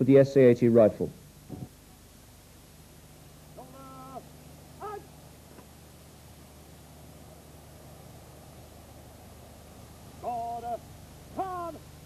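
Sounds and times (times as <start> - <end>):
man bellowing commands: 4.8 - 5.1, 10.2 - 11.9.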